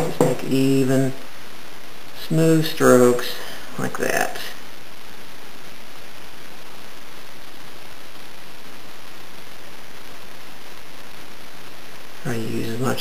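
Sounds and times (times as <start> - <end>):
recording hiss: 0.0 - 13.0.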